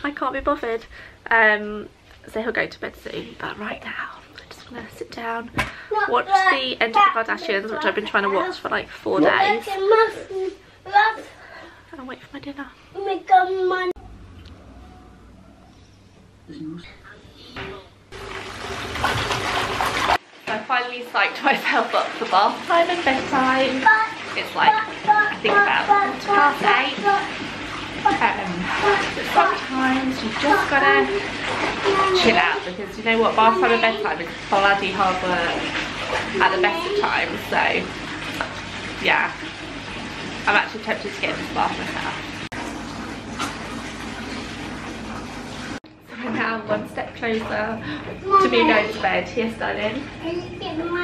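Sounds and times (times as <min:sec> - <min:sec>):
bath tap water rushing: 0:00.0 - 0:15.0, 0:17.6 - 0:51.0.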